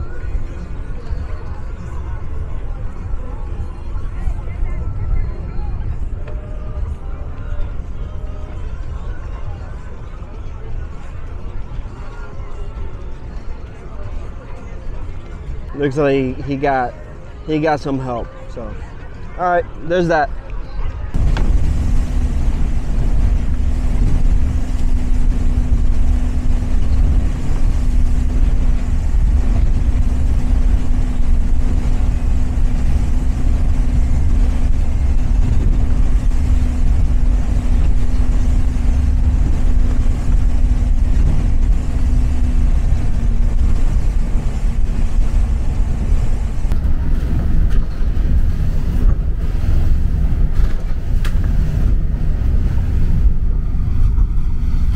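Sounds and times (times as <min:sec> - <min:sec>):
boat engine drone: 0:00.0 - 0:54.9
held hum: 0:21.1 - 0:54.9
water rushing along hull: 0:21.2 - 0:54.9.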